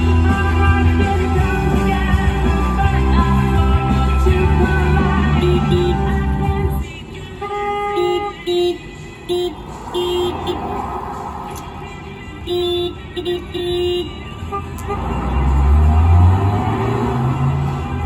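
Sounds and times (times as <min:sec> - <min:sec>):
car horn short toots: 0:05.4 - 0:06.2, 0:07.4 - 0:10.6, 0:12.4 - 0:15.2.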